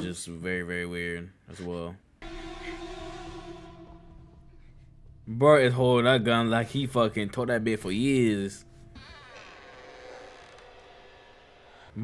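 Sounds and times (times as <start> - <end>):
buzzing drone with held tones: 2.2 - 11.5.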